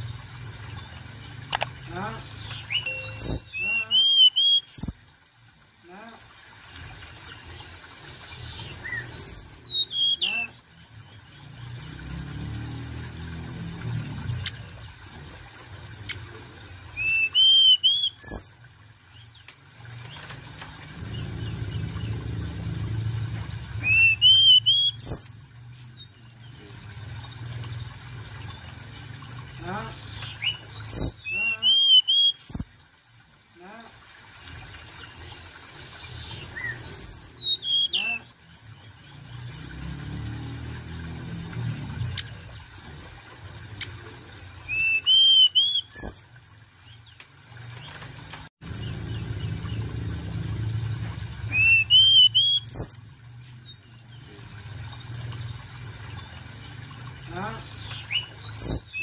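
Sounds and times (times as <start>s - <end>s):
bird singing whistled phrases: 2.6s - 5.0s, 8.8s - 10.6s, 17.0s - 18.5s, 23.8s - 25.4s, 30.4s - 32.6s, 36.6s - 38.3s, 44.7s - 46.2s, 51.5s - 53.0s
low rumble: 20.8s - 23.9s.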